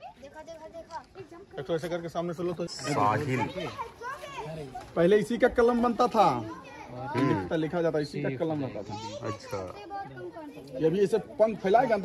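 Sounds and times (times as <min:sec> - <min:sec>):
children's voices: 0:00.0 - 0:02.0, 0:02.6 - 0:05.0, 0:06.1 - 0:07.7, 0:08.8 - 0:12.0.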